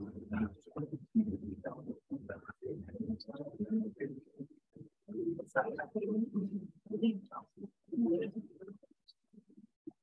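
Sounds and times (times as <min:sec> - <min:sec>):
quiet indistinct conversation: 0:00.0 - 0:10.0.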